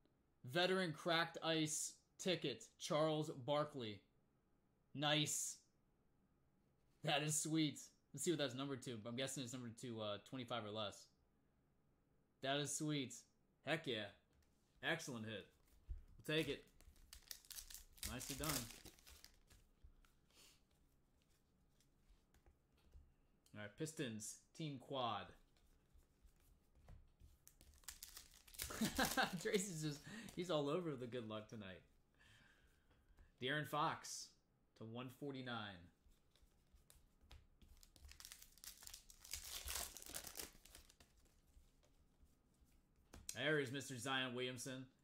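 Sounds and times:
foil wrapper crinkling: 17.0 - 19.6, 27.5 - 30.0, 37.8 - 41.2.

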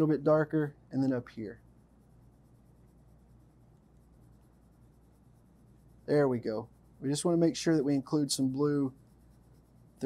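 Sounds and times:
low steady hum: 0.0 - 10.0
pencil shading on paper: 1.6 - 10.0.

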